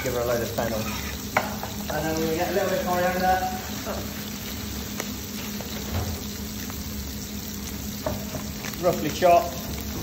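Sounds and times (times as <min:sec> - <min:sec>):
fish sizzling in a pan: 0:00.0 - 0:10.0.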